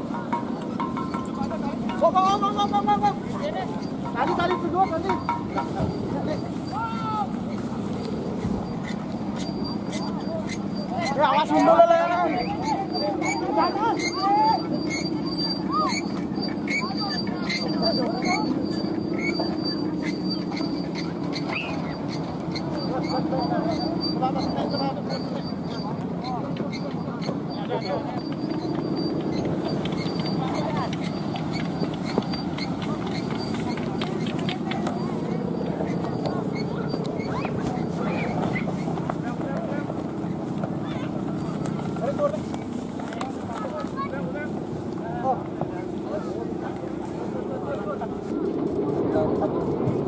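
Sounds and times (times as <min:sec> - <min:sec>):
crowd calling and shouting: 0:00.0 - 0:50.0
kite hummer droning: 0:00.0 - 0:50.0
people's voices: 0:00.0 - 0:50.0.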